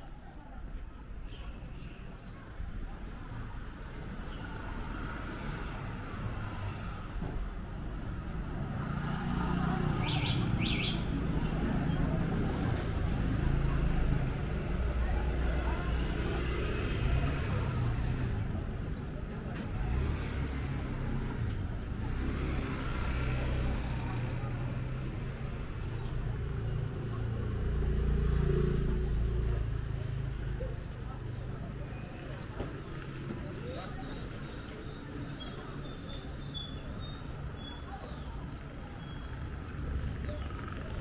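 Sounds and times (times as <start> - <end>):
people's voices: 0.0 - 41.0
road traffic rumble: 0.0 - 41.0.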